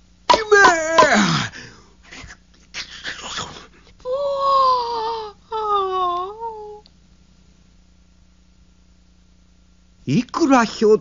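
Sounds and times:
cartoon man groaning: 0.3s - 1.6s.

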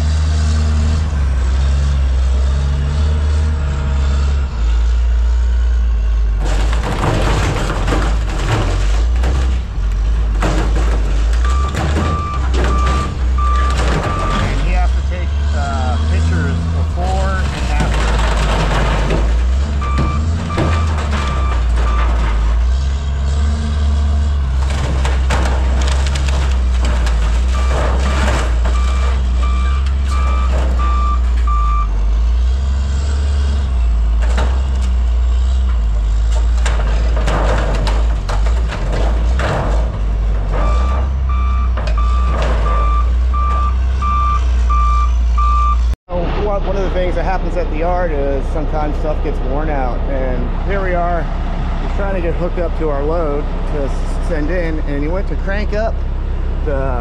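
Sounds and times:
diesel engine droning: 0.0s - 57.0s
backup alarm beeping: 11.5s - 14.9s, 19.8s - 22.1s, 28.8s - 32.0s, 40.6s - 45.9s.

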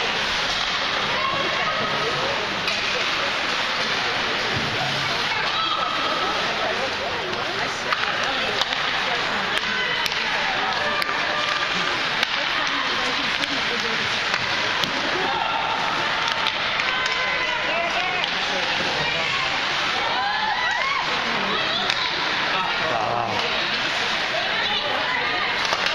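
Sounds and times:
hockey sticks and puck clacking: 0.0s - 22.6s, 23.4s - 25.9s
spectator chatter: 0.0s - 25.9s.

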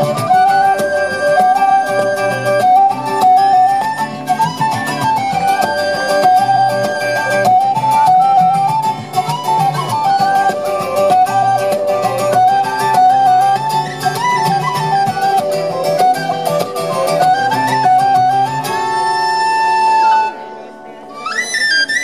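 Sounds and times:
strummed acoustic guitar: 0.0s - 22.0s
whistle melody: 0.0s - 22.0s.

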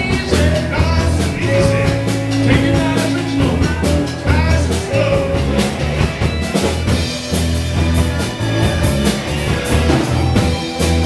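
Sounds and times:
drum kit beat: 0.0s - 11.0s
electric bass: 0.0s - 11.0s
electric guitars: 0.0s - 11.0s.

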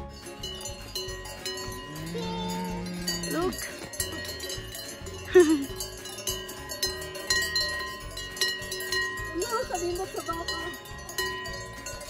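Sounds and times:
cowbells ringing: 0.0s - 12.0s.

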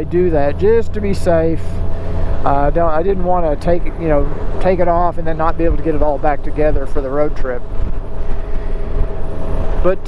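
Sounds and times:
wind buffeting and road noise: 0.0s - 10.0s.

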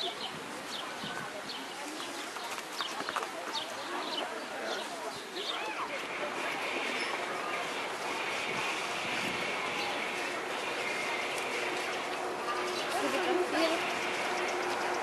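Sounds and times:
distant people's voices: 0.0s - 15.0s
outdoor background noise: 0.0s - 15.0s.

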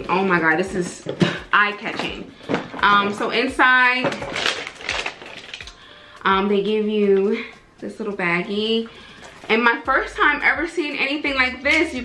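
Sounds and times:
paper and packaging rustling: 1.9s - 5.9s, 8.9s - 9.6s.

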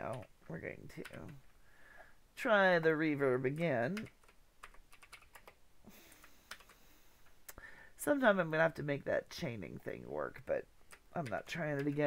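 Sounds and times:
keyboard and mouse clicks: 3.6s - 7.4s.

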